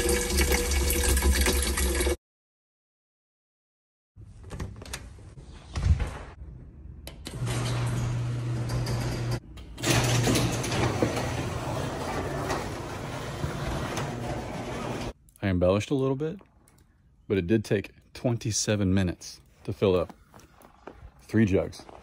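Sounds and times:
door opening: 0:07.0 - 0:15.2.

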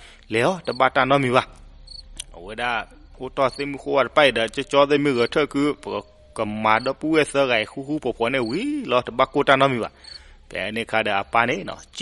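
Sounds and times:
man narrating: 0:00.3 - 0:01.6, 0:02.2 - 0:12.0
faint high-pitched chirp: 0:00.4 - 0:10.4.

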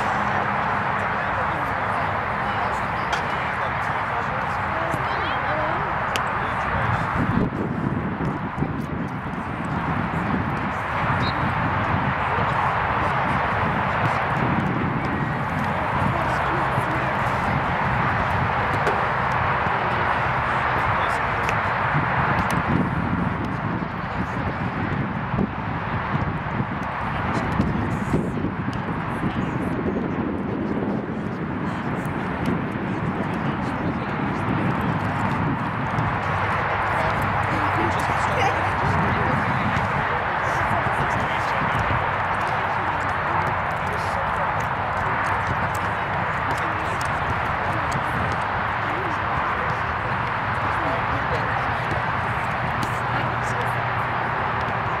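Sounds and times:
indistinct voices outdoors: 0:00.0 - 0:55.0.

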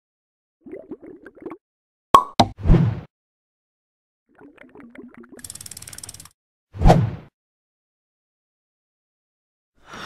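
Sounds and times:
bubbly pops: 0:00.6 - 0:01.6, 0:04.3 - 0:05.4
rapid ratchet-like clicking: 0:05.4 - 0:06.3.

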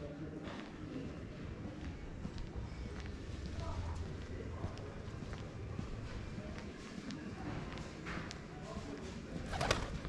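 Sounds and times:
steady low background noise: 0:00.0 - 0:10.0.

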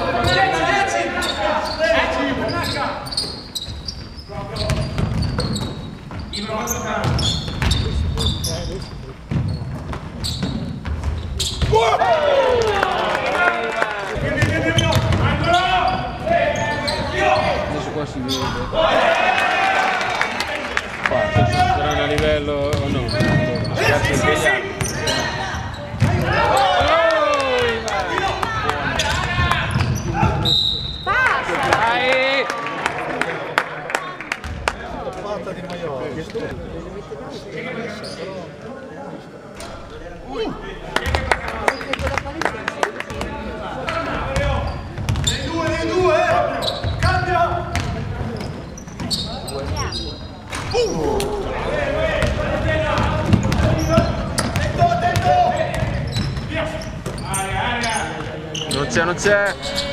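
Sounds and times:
voices calling out in a hall: 0:00.0 - 0:59.9
shoe squeaks: 0:00.2 - 0:11.8, 0:14.8 - 0:17.7, 0:18.3 - 0:18.7, 0:21.9 - 0:26.8, 0:29.0 - 0:31.1, 0:37.9 - 0:38.5, 0:46.5 - 0:47.2, 0:47.8 - 0:51.0, 0:53.5 - 0:54.7, 0:55.4 - 0:59.9
basketball bouncing on wooden floor: 0:09.3 - 0:11.7
people calling out: 0:50.6 - 0:53.2.

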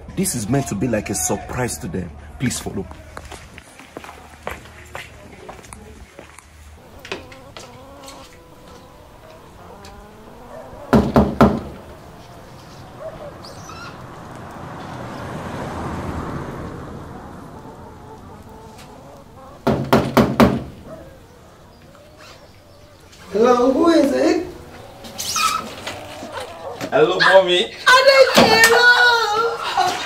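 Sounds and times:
knocking on a door: 0:10.9 - 0:11.8, 0:19.6 - 0:20.7.

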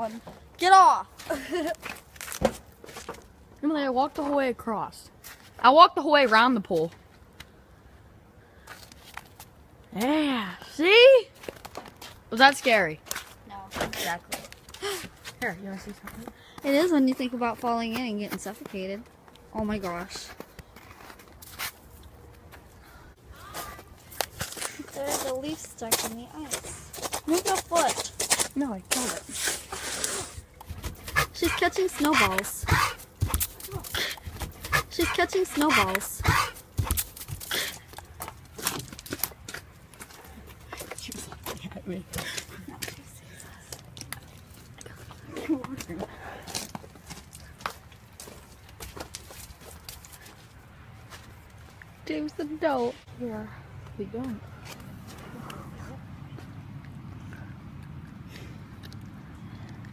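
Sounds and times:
dog panting and snapping: 0:30.5 - 0:43.0.

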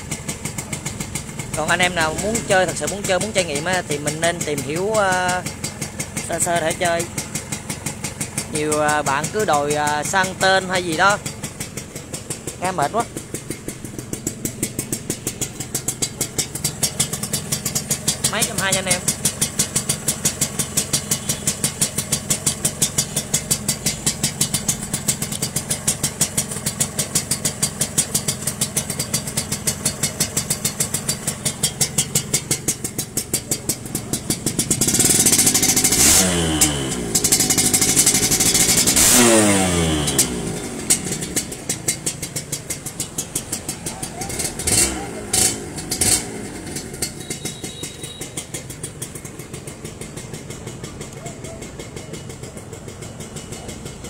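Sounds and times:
motorcycle engine idling and revving: 0:00.0 - 0:54.0.

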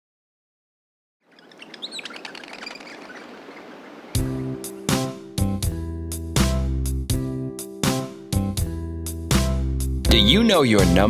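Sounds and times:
soft outdoor background hiss: 0:01.2 - 0:05.5
birds chirping: 0:01.2 - 0:05.6.

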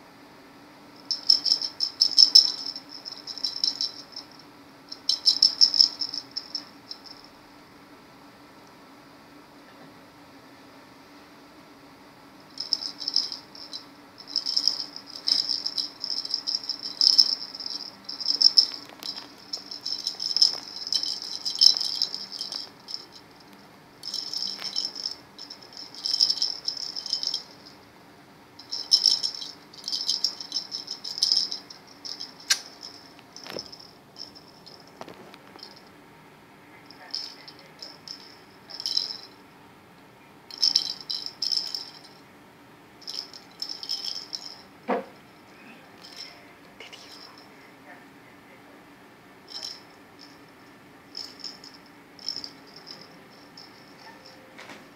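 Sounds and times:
bell in cat toy rattling: 0:01.1 - 0:07.3, 0:12.6 - 0:27.8, 0:28.6 - 0:35.9, 0:36.8 - 0:39.4, 0:40.5 - 0:42.2, 0:43.0 - 0:45.4, 0:46.0 - 0:46.4, 0:49.5 - 0:54.4.

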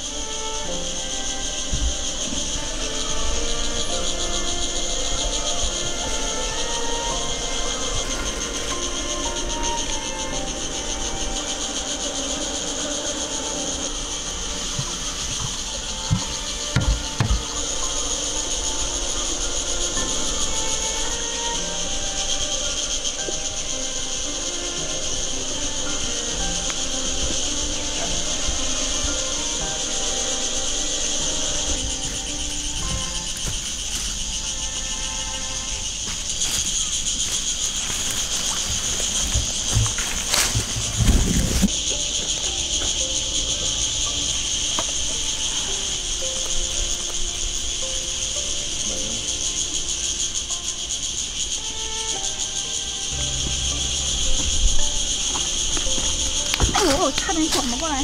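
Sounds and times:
high-pitched insect drone: 0:00.0 - 0:58.0
soft instrumental music: 0:00.0 - 0:58.0
sharp knocks: 0:14.8 - 0:17.6.

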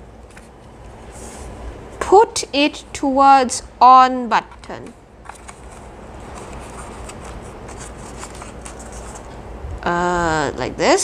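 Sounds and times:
hands rustling plastic box: 0:05.2 - 0:09.4.

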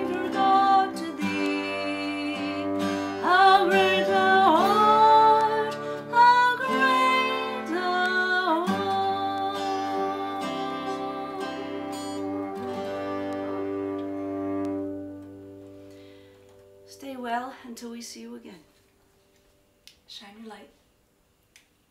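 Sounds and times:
woman singing: 0:00.0 - 0:13.6
cello: 0:00.0 - 0:16.2
acoustic guitar: 0:00.0 - 0:17.9.

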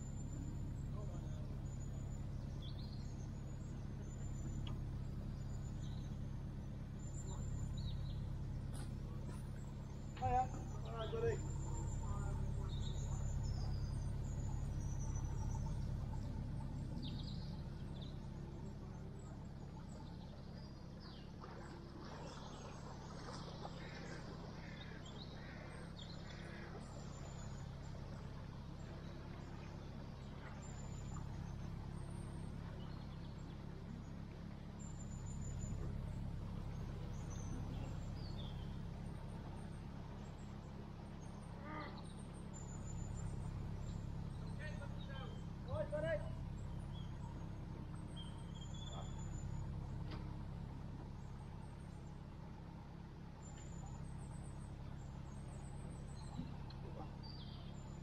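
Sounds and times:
boat engine humming: 0:00.0 - 0:58.0
small birds chirping: 0:00.0 - 0:58.0.

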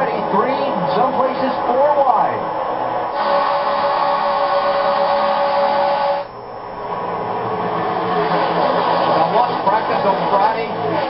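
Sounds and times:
race car engines roaring: 0:06.9 - 0:11.0.

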